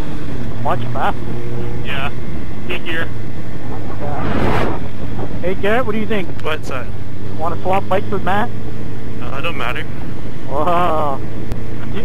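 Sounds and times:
motorcycle engine cruising: 0.0s - 11.8s
wind rush: 3.2s - 5.9s.

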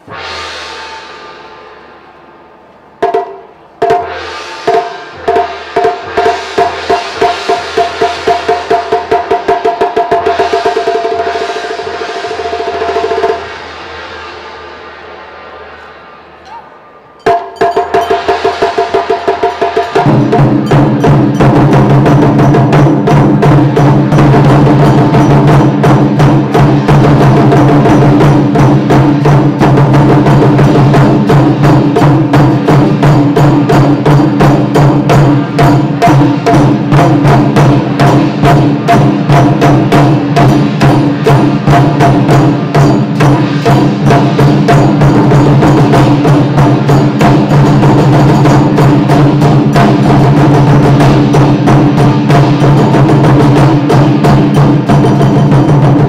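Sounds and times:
large barrel drums: 0.0s - 56.0s
ringing held tone: 16.4s - 18.5s.

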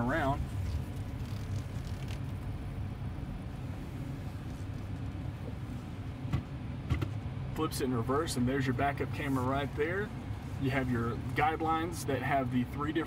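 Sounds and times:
engine low rumble from inside cab: 0.0s - 13.0s.

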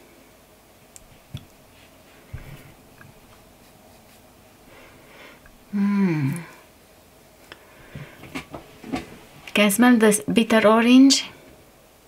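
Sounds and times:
soft sniffing breaths: 1.7s - 5.6s
woman humming: 5.7s - 6.7s.

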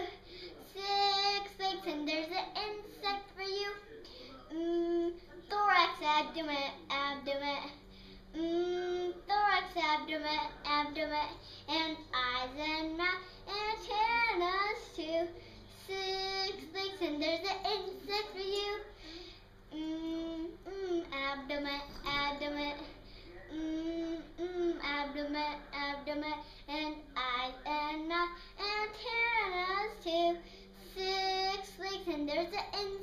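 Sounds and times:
girl singing: 8.4s - 18.9s, 19.7s - 22.9s, 23.5s - 33.0s.

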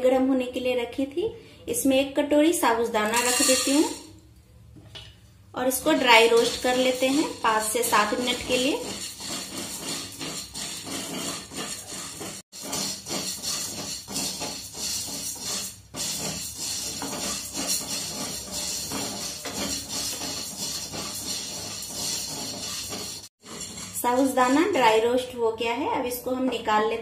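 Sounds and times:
pearls rattling in a pan: 3.1s - 4.0s, 5.8s - 24.6s.

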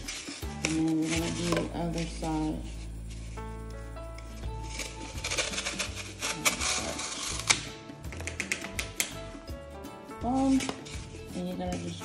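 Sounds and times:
background music: 0.0s - 12.0s
knife sawing floral foam: 4.7s - 7.6s.

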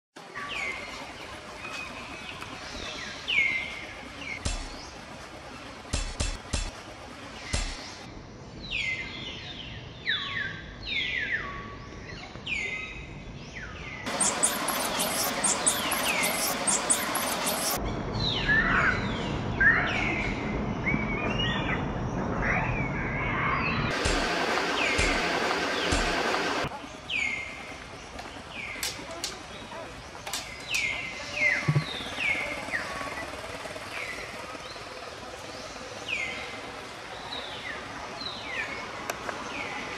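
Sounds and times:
loud dense hiss: 14.1s - 17.8s, 23.9s - 31.2s
short downward chirping calls: 14.1s - 17.8s.

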